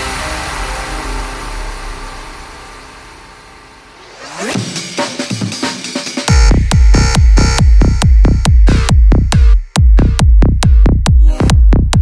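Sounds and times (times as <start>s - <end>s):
electronic dance music breakdown: 0.0s - 12.0s.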